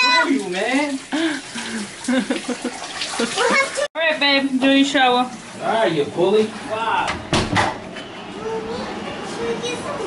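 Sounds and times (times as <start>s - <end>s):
shower spray running: 0.0s - 3.9s.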